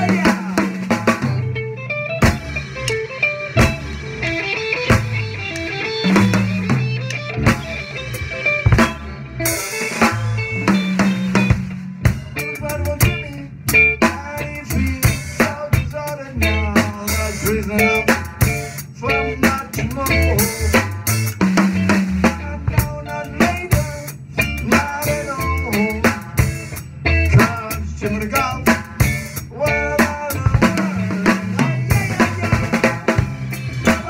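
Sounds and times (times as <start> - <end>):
person singing: 0.0 - 1.3, 12.4 - 21.0, 22.2 - 26.3, 29.5 - 34.0
bass guitar: 0.0 - 34.0
drum kit groove: 0.0 - 34.0
electric guitar: 0.0 - 34.0.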